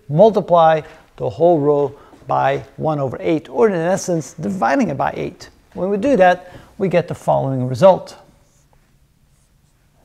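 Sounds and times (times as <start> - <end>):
marker drawing on whiteboard: 8.4 - 9.8.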